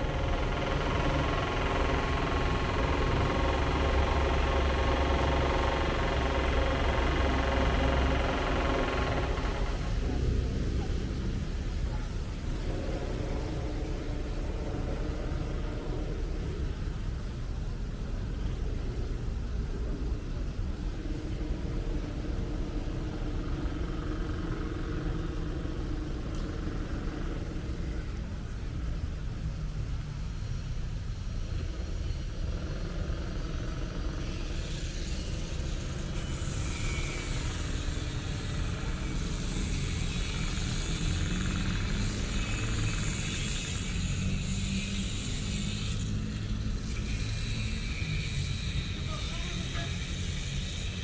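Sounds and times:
machinery humming: 0.0 - 51.0.

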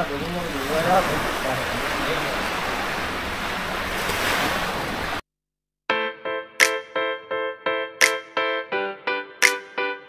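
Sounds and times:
small waves washing on sand: 0.0 - 5.2.

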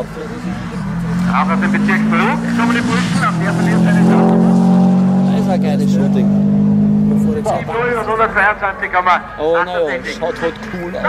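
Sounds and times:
rally car engine driving past: 0.0 - 9.4.

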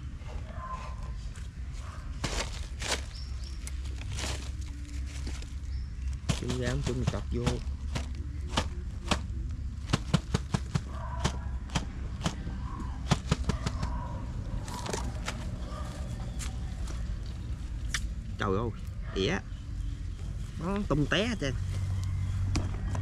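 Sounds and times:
low background hum: 0.0 - 23.0.

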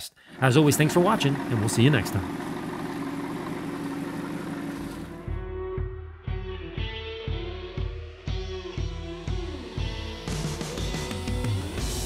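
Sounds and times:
car engine running at low revs: 0.4 - 5.3.

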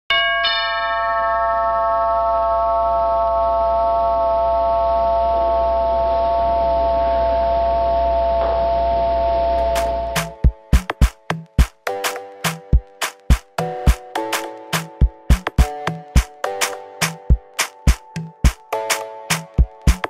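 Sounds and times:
bell-like chime chord: 0.1 - 10.4
sharp percussive hits: 9.6 - 20.0.

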